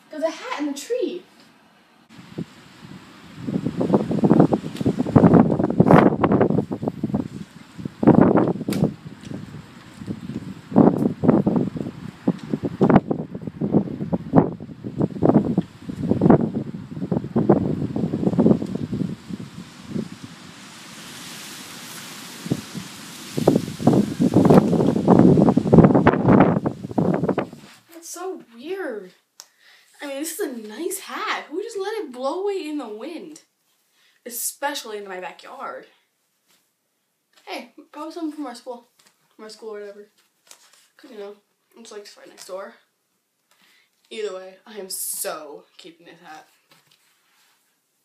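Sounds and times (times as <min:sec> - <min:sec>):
wind buffeting microphone: 0:02.1 - 0:27.7
rustling: 0:18.4 - 0:29.2, 0:40.0 - 0:42.6, 0:46.4 - 0:47.9.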